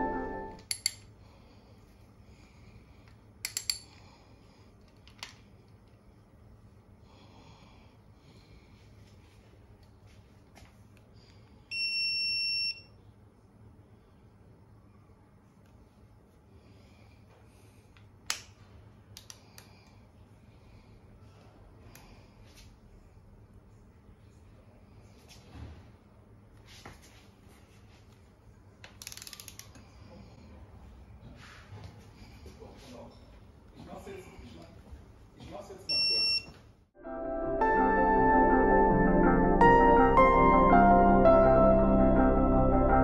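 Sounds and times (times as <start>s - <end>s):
ratchet wrench clicking: 29.0s - 29.8s
high-pitched torque wrench beep: 35.9s - 36.5s.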